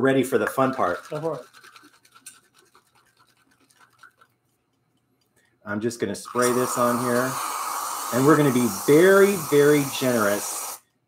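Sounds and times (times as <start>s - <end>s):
aerosol can shaken rattling: 0.3s - 4.6s, 6.3s - 10.8s.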